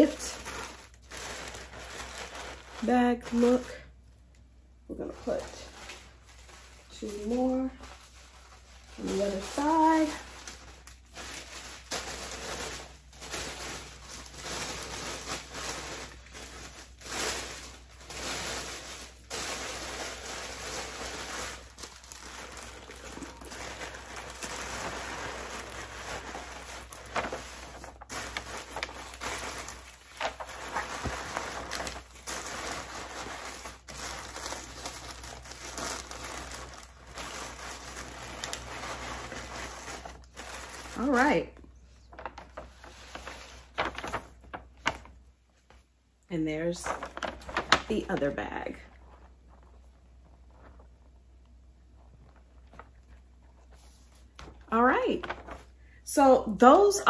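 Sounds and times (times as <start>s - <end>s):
tissue paper rustling: 0.0s - 4.0s, 4.9s - 45.9s, 46.5s - 55.8s.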